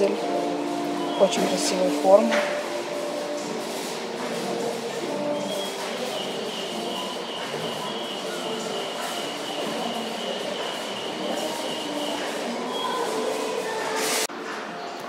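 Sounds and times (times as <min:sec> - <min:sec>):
large store background noise: 0:00.0 - 0:15.0.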